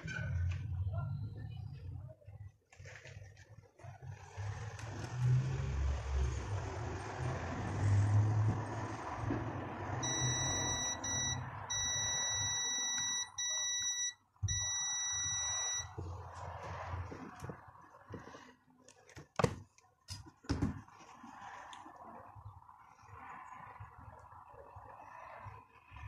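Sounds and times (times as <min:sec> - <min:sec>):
multimeter continuity beep: 0:10.0 - 0:16.0.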